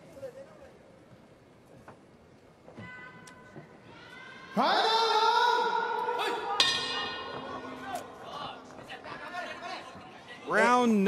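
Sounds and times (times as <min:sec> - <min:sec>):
boxing bell ringing: 0:06.6 - 0:07.8.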